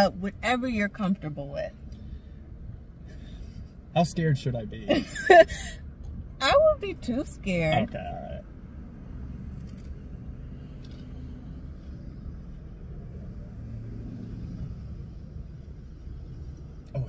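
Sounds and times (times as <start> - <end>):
car cabin rumble: 2.7 - 8.4.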